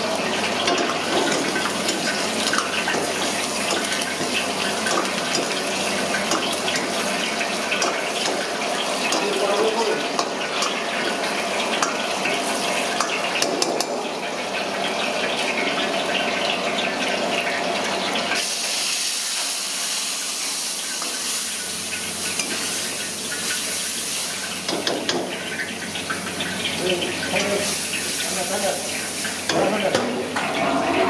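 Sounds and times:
oil sizzling in a wok: 0:00.0 - 0:31.0.

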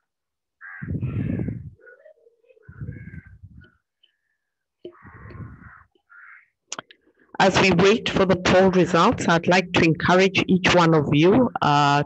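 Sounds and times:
harsh animal calls: 0:00.6 - 0:06.6.

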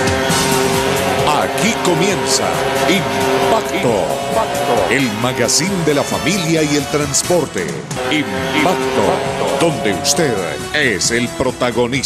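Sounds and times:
car sound effects: 0:00.0 - 0:11.8
loud intro theme music: 0:00.0 - 0:11.8
voice: 0:01.2 - 0:12.0.

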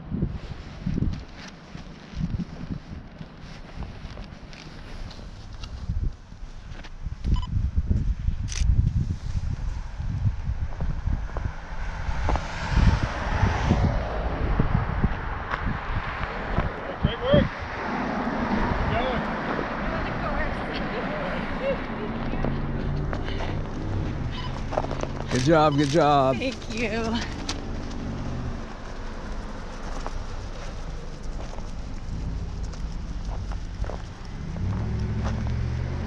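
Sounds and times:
low vehicle sound: 0:00.0 - 0:36.0
wind buffeting microphone: 0:00.0 - 0:36.0
footfalls on snowy road: 0:18.6 - 0:36.0.

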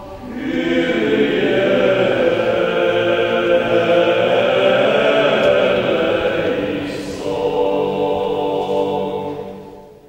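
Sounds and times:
male vocal quartet chanting: 0:00.2 - 0:10.0.

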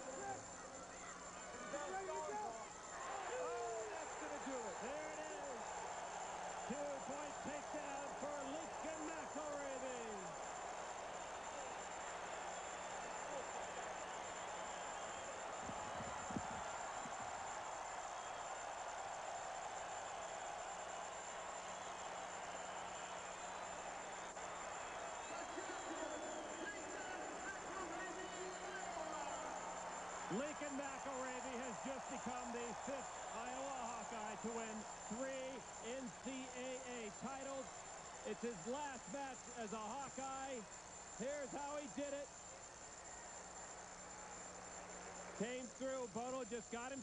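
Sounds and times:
arena crowd cheering: 0:00.0 - 0:47.0
steady recording hum: 0:00.0 - 0:47.0.

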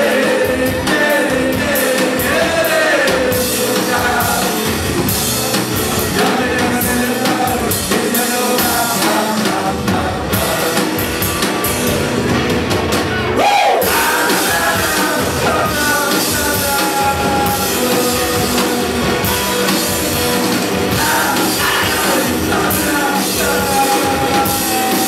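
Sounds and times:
man singing: 0:00.0 - 0:04.8, 0:06.0 - 0:11.6, 0:13.4 - 0:19.8, 0:20.5 - 0:25.0
rock band playing: 0:00.0 - 0:25.0.

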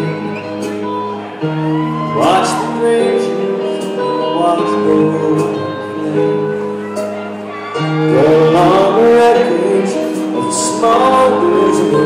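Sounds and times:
live country band ballad: 0:00.0 - 0:12.0.

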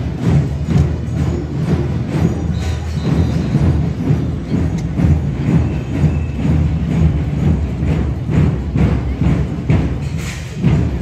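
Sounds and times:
drums beating march rhythm: 0:00.0 - 0:11.0
marching band playing: 0:00.0 - 0:11.0.

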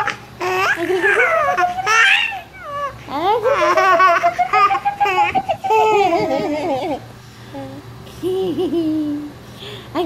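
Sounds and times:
baby laughing and babbling: 0:00.0 - 0:09.3.

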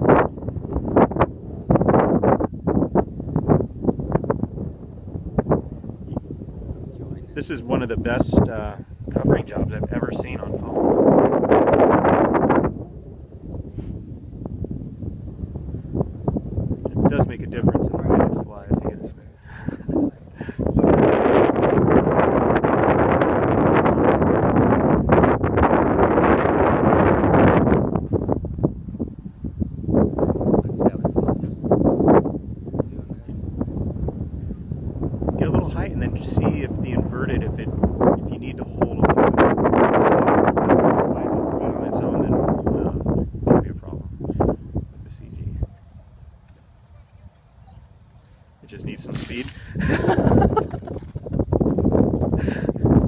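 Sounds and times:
wind buffeting microphone: 0:00.0 - 0:53.0.

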